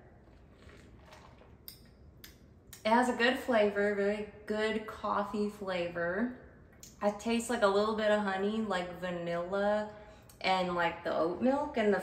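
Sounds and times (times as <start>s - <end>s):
sipping through a straw: 0.2s - 1.9s
woman speaking: 2.8s - 12.0s.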